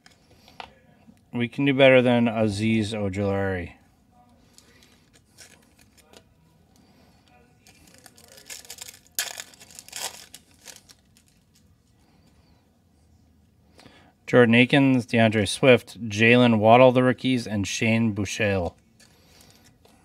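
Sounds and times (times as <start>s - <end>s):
foil wrapper crinkling and tearing: 4.6s - 6.2s, 7.6s - 11.7s.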